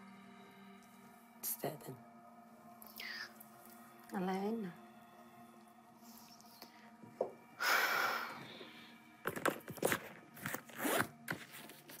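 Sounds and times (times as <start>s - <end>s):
zipper pulled: 9.8s - 11.7s.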